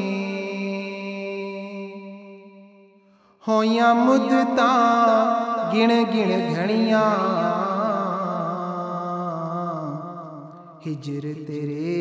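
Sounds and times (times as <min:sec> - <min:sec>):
man singing a long note: 0:03.4 - 0:12.0.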